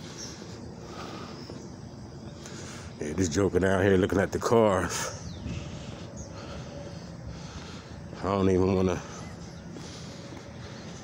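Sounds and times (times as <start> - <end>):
faint bird chirp: 0.0 - 11.0
street rumble: 0.0 - 11.0.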